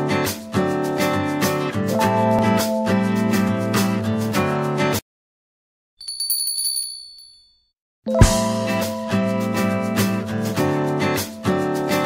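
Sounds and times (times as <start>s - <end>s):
small bell trill: 6.0s - 8.3s.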